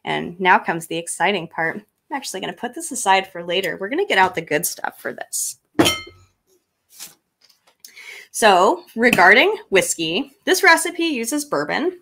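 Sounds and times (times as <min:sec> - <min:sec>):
bottle clinking on table: 0:05.8 - 0:06.3.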